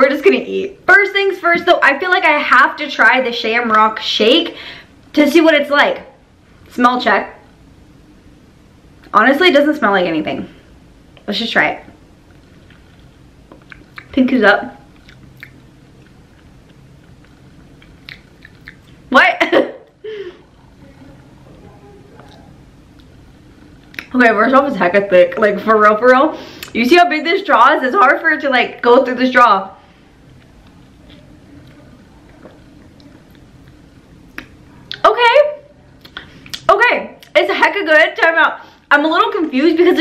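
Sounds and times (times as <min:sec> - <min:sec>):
faint mouth clicks: 0:12.6 - 0:14.2, 0:17.2 - 0:19.0.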